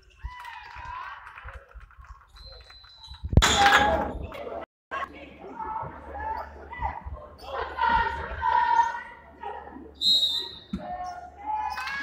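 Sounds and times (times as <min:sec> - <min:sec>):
voices shouting and chanting: 0:04.9 - 0:12.0
referee's whistle: 0:10.0 - 0:10.9.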